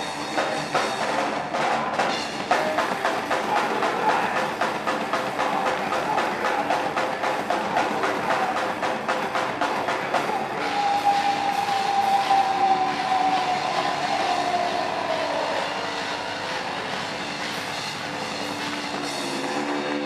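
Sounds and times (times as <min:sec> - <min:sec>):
rapid drumming: 0:00.0 - 0:20.0.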